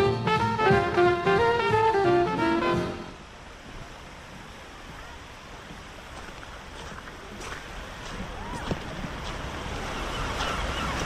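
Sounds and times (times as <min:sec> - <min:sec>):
wind: 0:00.0 - 0:11.0
waves washing on shore: 0:03.1 - 0:11.0.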